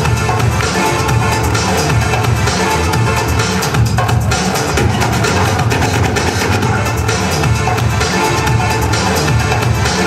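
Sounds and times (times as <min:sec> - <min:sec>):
electronic dance music with heavy bass: 0:00.0 - 0:10.0.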